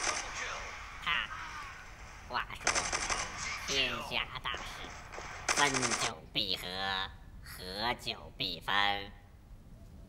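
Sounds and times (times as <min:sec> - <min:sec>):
game machine-gun fire: 0:00.0 - 0:00.7, 0:02.0 - 0:03.8, 0:04.5 - 0:06.2.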